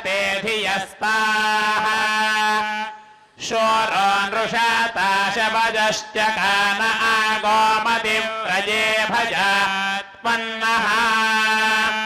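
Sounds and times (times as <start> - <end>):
hymn chanting on one pitch: 0.0 - 12.0.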